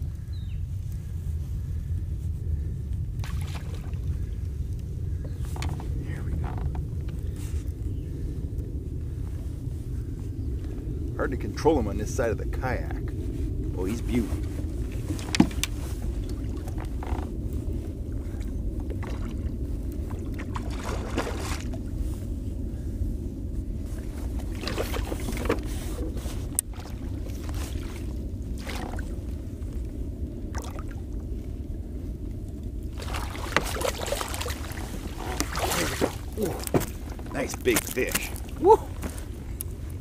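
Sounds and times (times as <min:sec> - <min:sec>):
wind: 0:00.0 - 0:40.0
water rumbling: 0:02.6 - 0:40.0
water splashes: 0:03.2 - 0:04.2, 0:18.2 - 0:21.8, 0:24.0 - 0:29.8, 0:30.5 - 0:31.4, 0:32.9 - 0:39.0.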